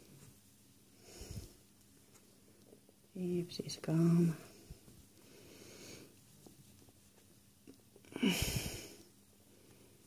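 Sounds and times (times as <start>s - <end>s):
person breathing: 0.9s - 1.6s, 4.4s - 6.2s, 8.1s - 10.0s
sigh-like breath: 8.1s - 9.0s.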